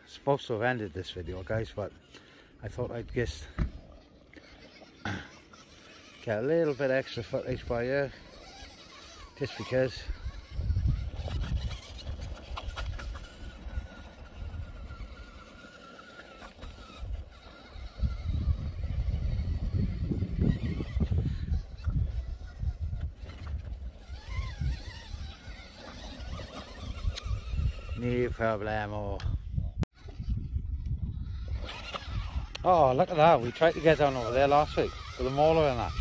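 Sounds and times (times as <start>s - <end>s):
wind buffeting microphone: 7.2s - 36.0s.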